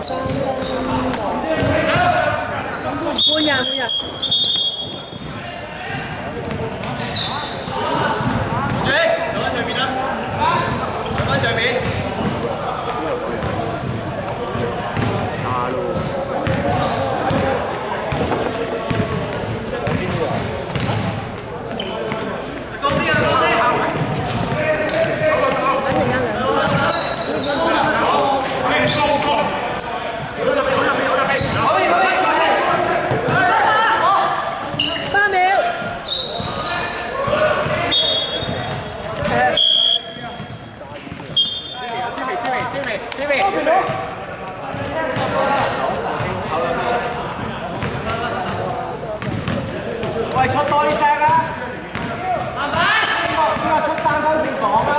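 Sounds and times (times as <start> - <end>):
basketball bouncing on hardwood: 15.0 - 15.2, 16.4 - 17.4.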